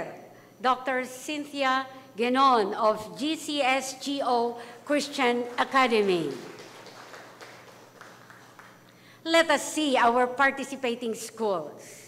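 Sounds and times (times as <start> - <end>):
audience applause: 5.5 - 8.8.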